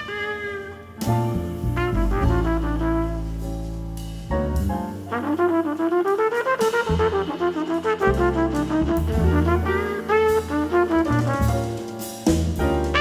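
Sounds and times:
band accompaniment: 0.0s - 13.0s
double bass: 0.0s - 13.0s
trumpet jazz solo: 0.0s - 13.0s.

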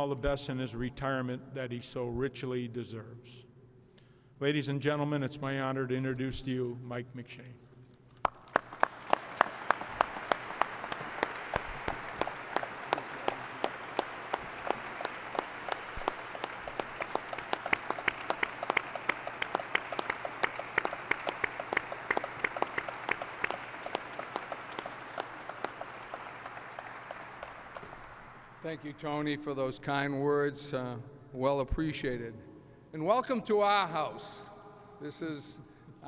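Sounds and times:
sharp single claps: 8.2s - 28.6s
audience applauding: 8.2s - 29.0s.

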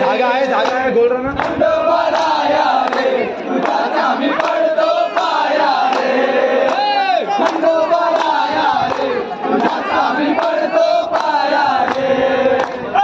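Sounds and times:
men chanting and singing: 0.0s - 13.0s
rhythmic hand-clapping: 0.0s - 13.0s.

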